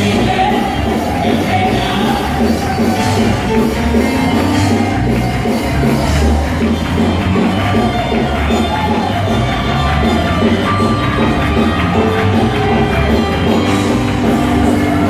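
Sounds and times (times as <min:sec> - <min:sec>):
congregation clapping: 0:00.0 - 0:15.0
live worship band music: 0:00.0 - 0:15.0.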